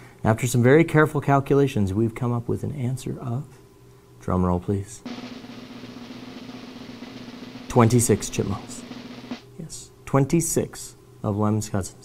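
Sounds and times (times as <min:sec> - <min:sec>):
snare drum roll: 0:05.1 - 0:09.4.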